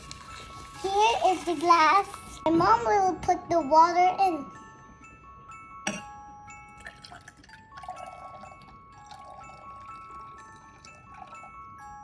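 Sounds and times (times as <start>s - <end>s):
chiming mallet music: 0.0s - 12.0s
water poured into a glass: 6.8s - 11.6s.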